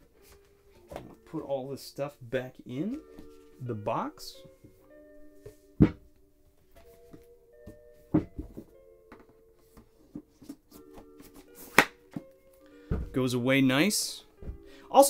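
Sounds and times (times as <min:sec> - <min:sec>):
soft background music: 0:00.0 - 0:15.0
books knocking into cardboard box: 0:07.1 - 0:08.7, 0:12.9 - 0:13.2.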